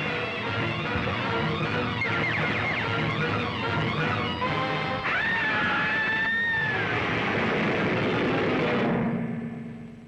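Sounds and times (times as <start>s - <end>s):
woman screaming: 5.0s - 7.0s.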